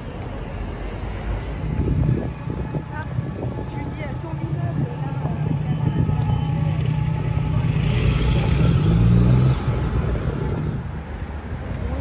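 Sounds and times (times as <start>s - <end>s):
street traffic: 0.0s - 12.0s
vehicle engine running close by: 1.7s - 12.0s.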